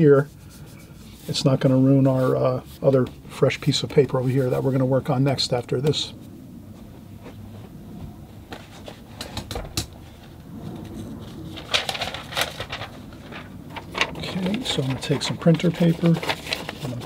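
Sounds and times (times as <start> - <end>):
paper rustling: 10.0 - 17.0.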